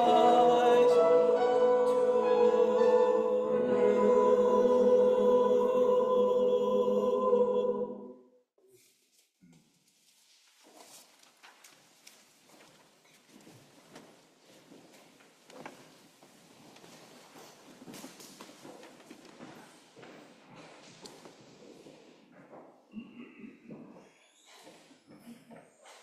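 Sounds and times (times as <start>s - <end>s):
rustling: 8.7s - 19.8s.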